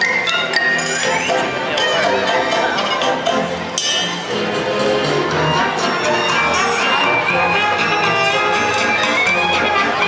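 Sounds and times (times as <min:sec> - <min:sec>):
parade music over loudspeakers: 0:00.0 - 0:10.0.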